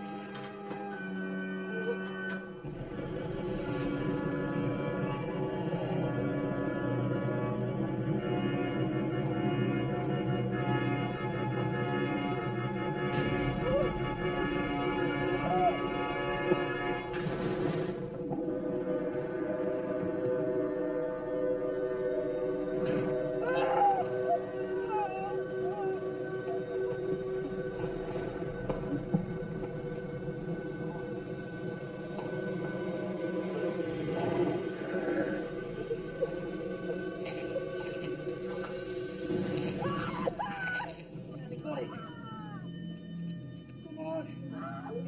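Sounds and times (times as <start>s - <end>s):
low sustained drone: 1.2s - 40.0s
person moaning and wailing: 23.3s - 26.6s, 39.8s - 41.0s.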